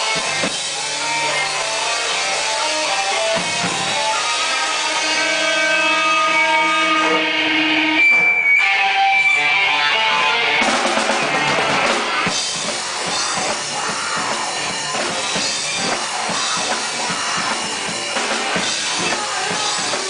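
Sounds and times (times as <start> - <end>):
distorted guitars and drums crashing: 0.0 - 20.0
electric guitars ringing held notes: 0.0 - 20.0
live rock band playing: 0.0 - 20.0.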